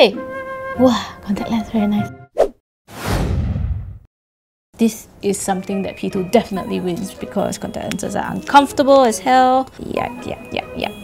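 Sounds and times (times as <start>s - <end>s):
brief swish: 2.4s - 4.1s.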